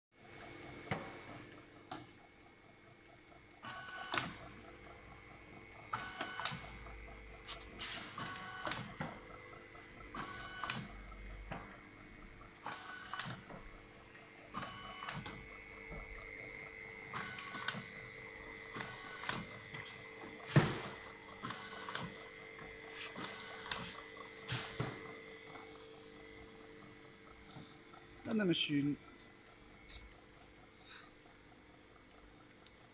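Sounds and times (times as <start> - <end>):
motor and conveyor hum: 0.2 - 32.9.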